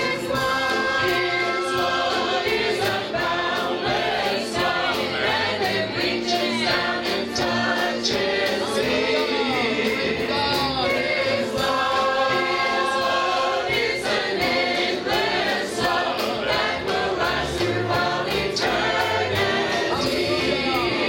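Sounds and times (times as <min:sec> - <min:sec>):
church choir singing gospel: 0:00.0 - 0:21.0.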